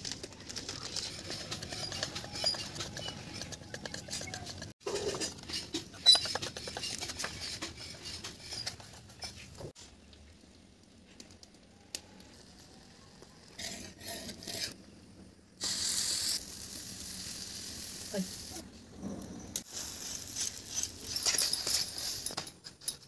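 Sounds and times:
batter sizzling on hot iron: 0:05.0 - 0:22.4.

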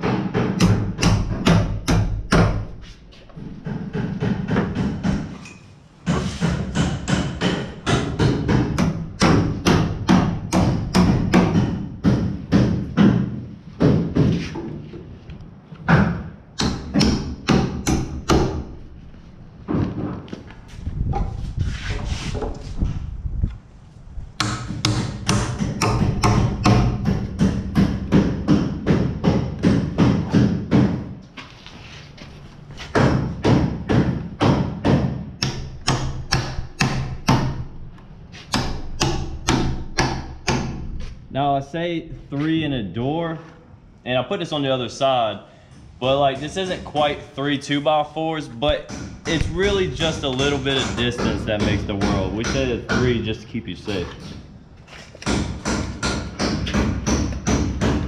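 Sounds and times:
hammer striking nails into wood: 0:00.0 - 0:02.7, 0:03.6 - 0:05.4, 0:06.0 - 0:14.7, 0:15.9 - 0:18.8, 0:24.4 - 0:31.1, 0:32.9 - 0:37.7, 0:38.5 - 0:40.9, 0:48.8 - 0:53.2, 0:55.2 - 0:58.0.

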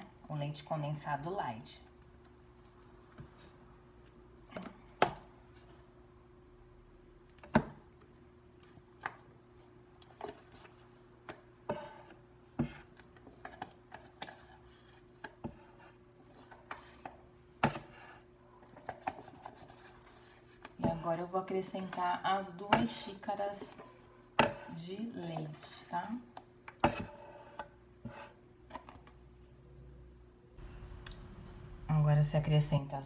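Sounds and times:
steady low hum: 0:29.2 - 0:33.0.

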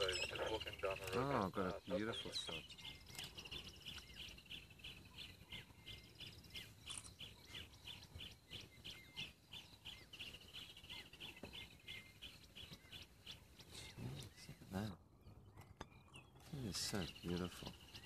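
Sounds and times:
bird chirping: 0:00.0 - 0:18.0.

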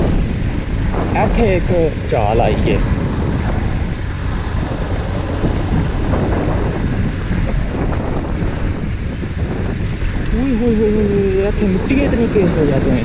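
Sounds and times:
motorcycle engine running: 0:00.0 - 0:13.0
wind on microphone: 0:00.0 - 0:13.0.

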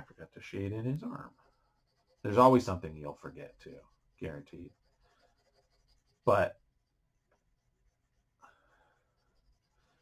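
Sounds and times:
pencil scratching on paper: 0:00.0 - 0:10.0.

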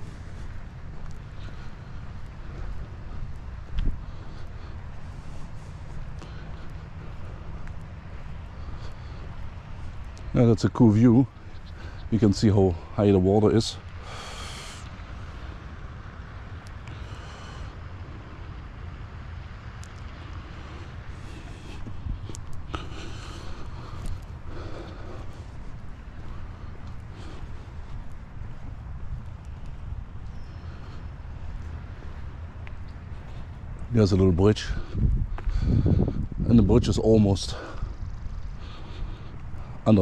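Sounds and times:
wind rumble on microphone: 0:00.0 - 0:40.0
short hissing breaths: 0:13.9 - 0:16.2, 0:16.8 - 0:18.6.

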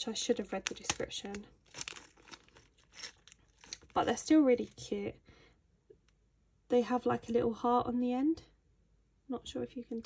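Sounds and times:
plastic bag crinkling: 0:00.5 - 0:04.8.

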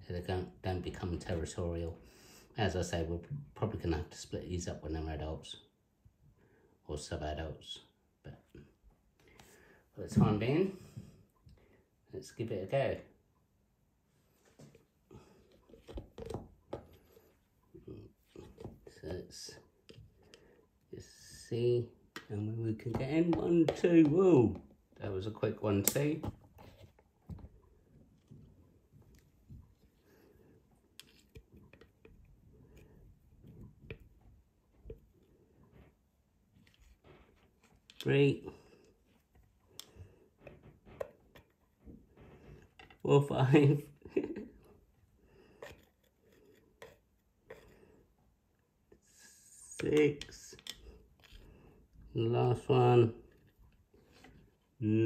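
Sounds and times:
plastic tubs clicking and tapping: 0:22.1 - 0:24.8.

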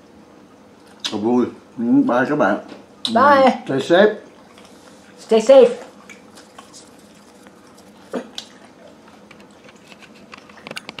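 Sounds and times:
fried wontons clicking and crackling: 0:06.0 - 0:11.0.

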